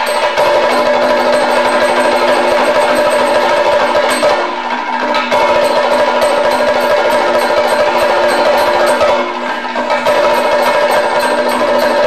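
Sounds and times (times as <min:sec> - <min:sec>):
hand drums in a fast rhythm: 0:00.0 - 0:12.0
sustained melodic tones: 0:00.0 - 0:12.0.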